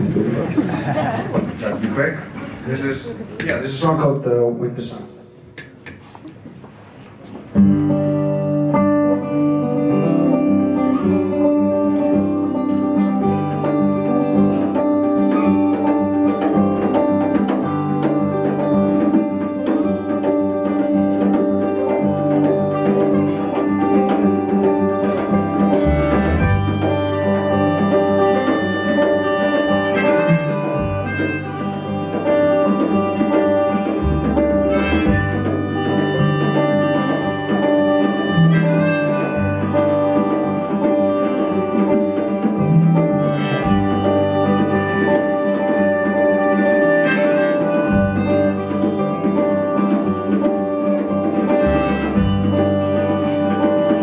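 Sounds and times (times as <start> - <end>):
folk band playing: 0.0 - 54.0
acoustic guitar strumming: 7.5 - 54.0
harmonica: 7.6 - 54.0.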